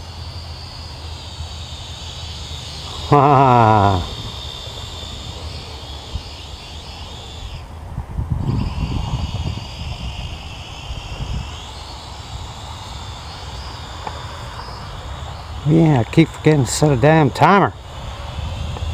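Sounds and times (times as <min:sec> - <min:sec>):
quadcopter motors whining: 0:00.0 - 0:18.9.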